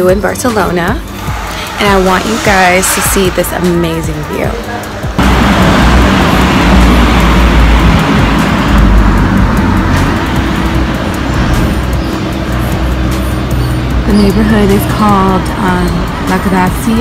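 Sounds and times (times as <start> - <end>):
background music: 0.0 - 17.0
passing traffic rumble: 0.0 - 17.0.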